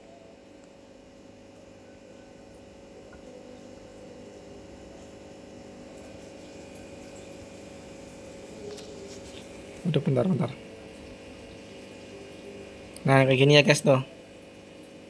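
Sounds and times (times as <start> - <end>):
faint machine hum: 0.0 - 15.0.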